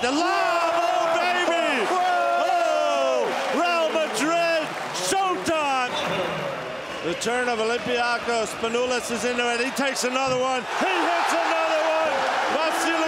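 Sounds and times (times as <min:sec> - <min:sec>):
arena crowd noise: 0:00.0 - 0:13.0
man commentating excitedly: 0:07.2 - 0:13.0.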